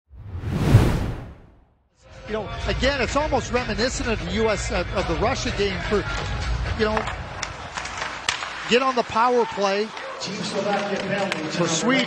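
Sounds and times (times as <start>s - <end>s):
whoosh sound effect: 0.1s - 1.6s.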